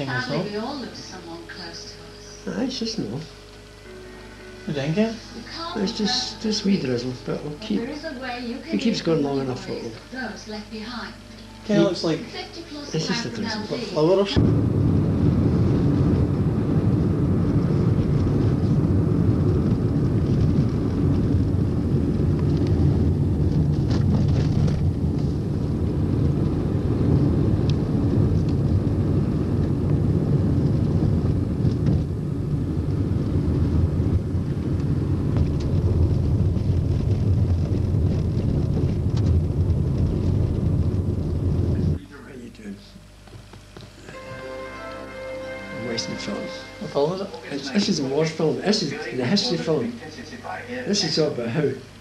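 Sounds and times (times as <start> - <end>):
moving vehicle rumble: 14.4 - 42.0
wind noise: 14.4 - 42.0.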